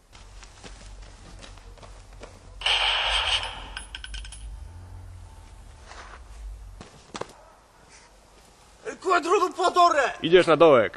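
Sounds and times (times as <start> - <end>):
gunshot burst: 2.6 - 4.0.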